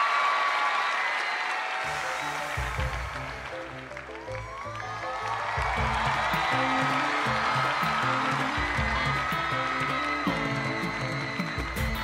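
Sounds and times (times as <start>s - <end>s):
audience clapping and cheering: 0.0s - 12.0s.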